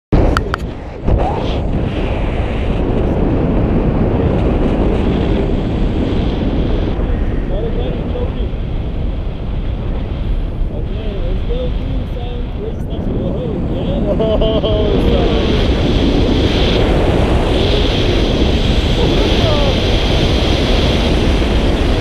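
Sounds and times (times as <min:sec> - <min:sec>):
wind buffeting microphone: 0:00.1 - 0:22.0.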